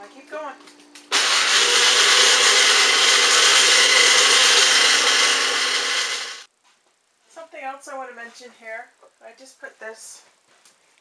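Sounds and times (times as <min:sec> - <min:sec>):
small blender grinding: 0:01.1 - 0:06.5.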